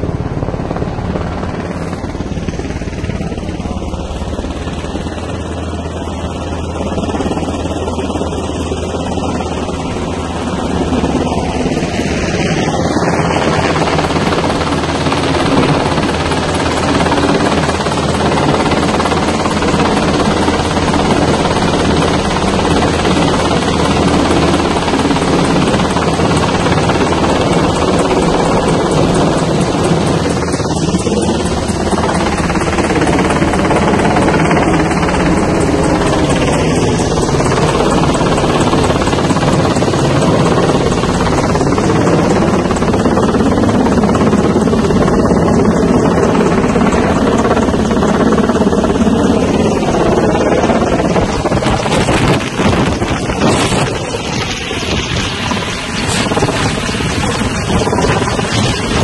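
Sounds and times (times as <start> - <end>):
helicopter flying low overhead: 0.0 - 59.0.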